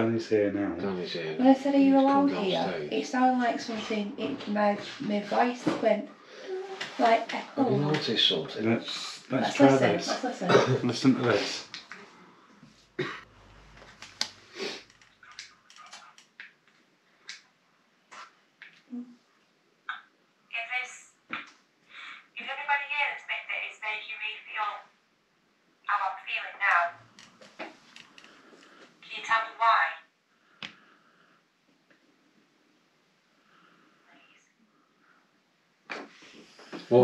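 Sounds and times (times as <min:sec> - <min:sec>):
speech from voice recorder: 0:02.0 - 0:02.9.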